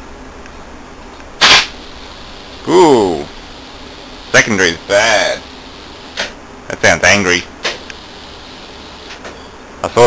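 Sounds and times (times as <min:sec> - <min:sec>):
steady low hum: 0:00.0 - 0:10.0
sharp electrical arc crack: 0:01.4 - 0:06.4.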